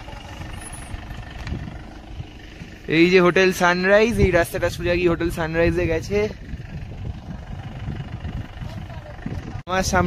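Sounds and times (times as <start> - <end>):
wind buffeting microphone: 0.0 - 2.9, 3.9 - 10.0
man speaking: 2.9 - 6.4.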